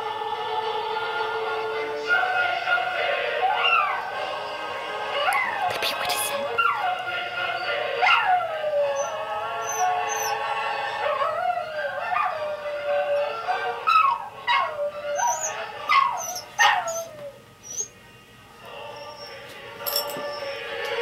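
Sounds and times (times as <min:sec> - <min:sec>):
dogs howling: 0:00.3 - 0:04.3, 0:05.0 - 0:05.8, 0:06.4 - 0:18.0, 0:18.6 - 0:21.0.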